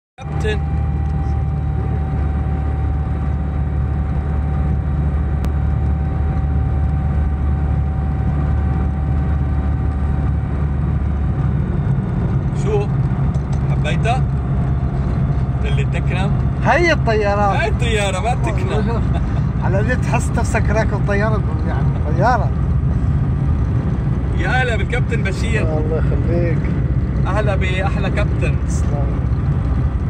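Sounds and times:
light aircraft engine and propeller: 0.3 - 16.7.

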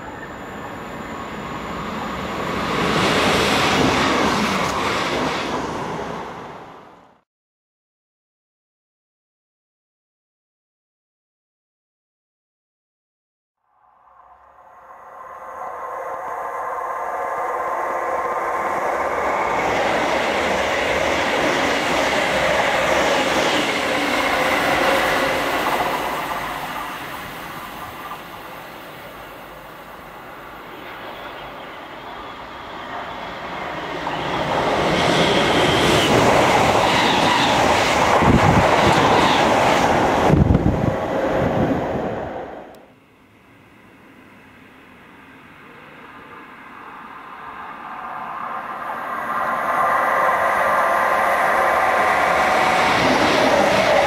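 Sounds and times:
train passing at speed: 0.0 - 7.2, 13.8 - 42.9, 43.7 - 54.0.

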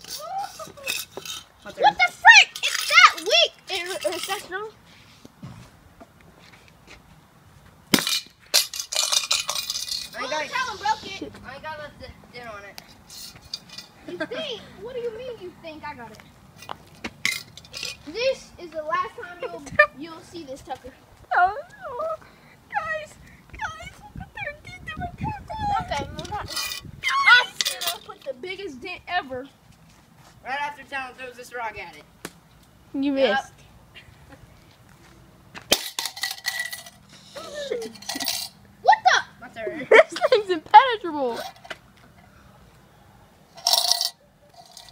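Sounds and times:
voices wailing: 0.0 - 4.3, 10.1 - 12.0, 21.3 - 28.3
loose pieces clattering: 8.0 - 10.2.

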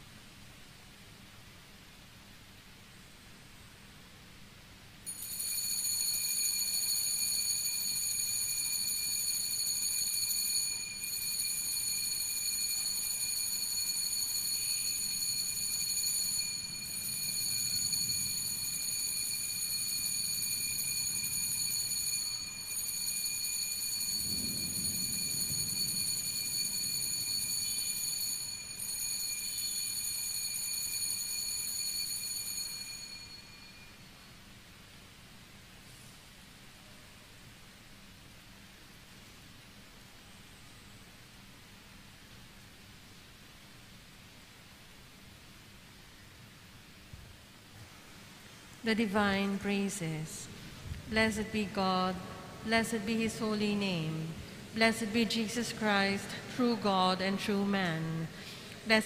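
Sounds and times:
altar bells ringing: 5.1 - 34.2.

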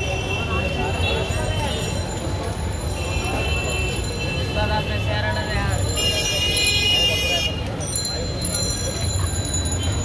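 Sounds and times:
street voices: 0.0 - 10.0
traffic rumble: 0.0 - 10.0.

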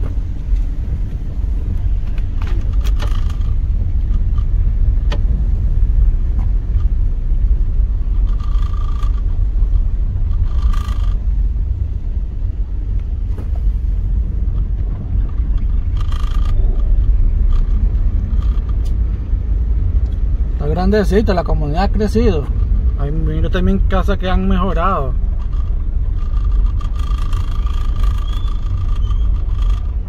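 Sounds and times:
car engine rumble: 0.0 - 30.0
tyre noise on road: 0.0 - 30.0.

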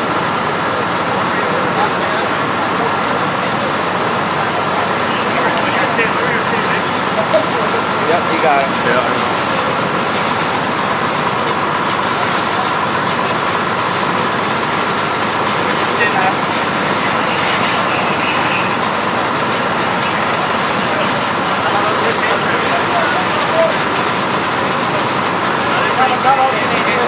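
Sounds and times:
faint distant voices: 0.0 - 27.0
fire pump running: 0.0 - 27.0.

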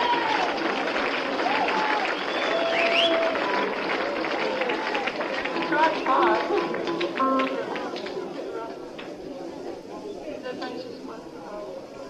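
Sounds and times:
audience applauding: 0.0 - 9.0.

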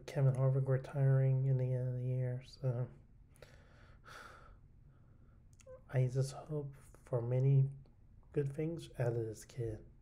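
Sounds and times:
person breathing softly: 3.3 - 5.5.

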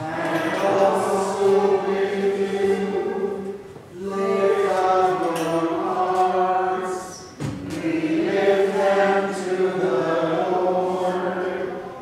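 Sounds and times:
woman chanting liturgical chant: 0.0 - 12.0.

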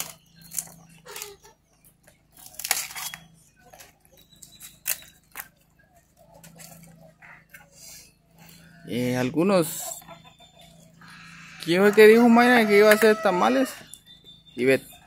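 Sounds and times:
leaves rustling and tearing: 0.0 - 1.6, 2.4 - 5.6.

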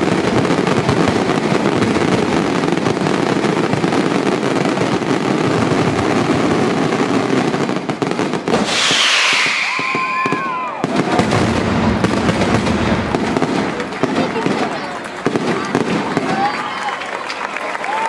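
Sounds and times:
fireworks bangs and crackling: 0.0 - 17.5
falling firework whistle: 8.5 - 11.4.

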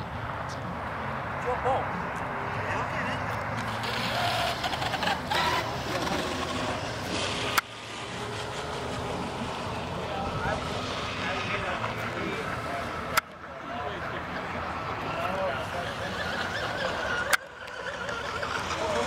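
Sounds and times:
steady background noise: 0.0 - 19.0
chatter of bystanders: 0.5 - 7.6, 8.3 - 19.0.

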